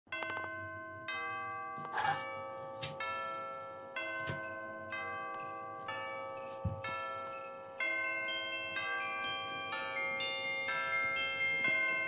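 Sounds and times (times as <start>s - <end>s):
chiming bell tones: 0.1s - 12.0s.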